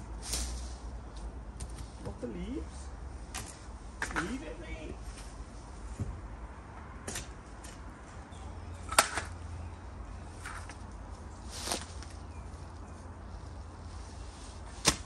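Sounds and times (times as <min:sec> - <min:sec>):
low steady rumble: 0:00.0 - 0:15.0
spades knocking and scraping soil: 0:00.2 - 0:02.4, 0:03.3 - 0:04.7, 0:07.0 - 0:08.0, 0:08.8 - 0:09.5, 0:10.2 - 0:15.0.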